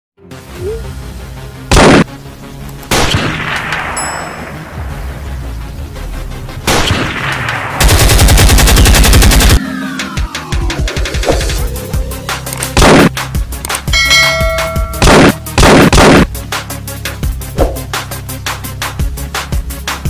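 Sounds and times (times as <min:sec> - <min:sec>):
background music: 0:00.2 - 0:20.0
gunshots with echo: 0:14.8 - 0:16.3.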